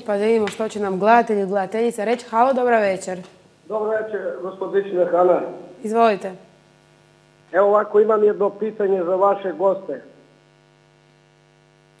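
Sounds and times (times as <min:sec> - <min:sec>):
electrical hum on phone line: 0:00.0 - 0:12.0.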